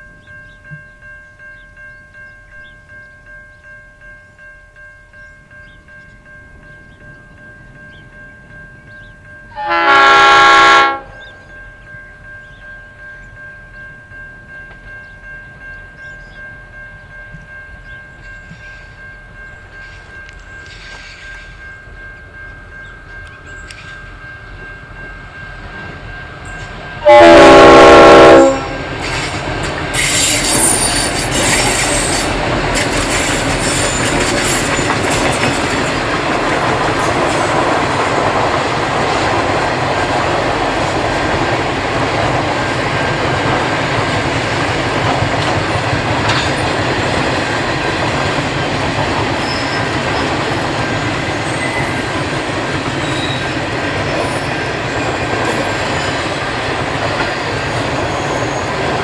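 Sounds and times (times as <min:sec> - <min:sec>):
train wheels rumbling on rail: 0:05.1 - 0:59.0
train horn blast: 0:09.5 - 0:11.3, 0:27.0 - 0:28.9
wheels squealing: 0:29.0 - 0:36.0, 0:49.4 - 0:50.6, 0:51.2 - 0:59.0.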